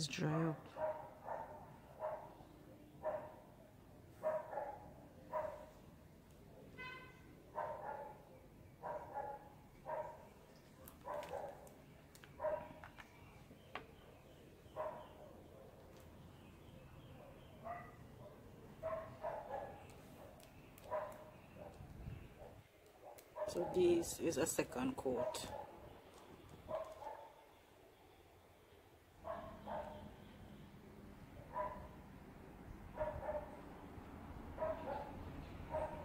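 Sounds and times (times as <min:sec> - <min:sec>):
dog barking: 0:00.7 - 0:02.4, 0:03.0 - 0:03.5, 0:04.2 - 0:05.8, 0:06.5 - 0:11.7, 0:12.4 - 0:12.8, 0:14.7 - 0:15.8, 0:17.2 - 0:23.9, 0:25.1 - 0:25.8, 0:26.7 - 0:27.4, 0:29.2 - 0:30.2, 0:31.4 - 0:32.0, 0:32.9 - 0:33.6, 0:34.6 - 0:36.0.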